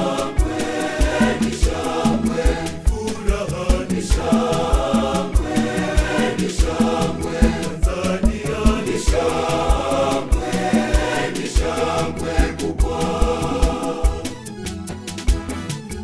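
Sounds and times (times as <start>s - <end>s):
steady bass drum beat: 0.0s - 14.4s, 15.2s - 15.7s
choir singing gospel song: 0.0s - 15.1s.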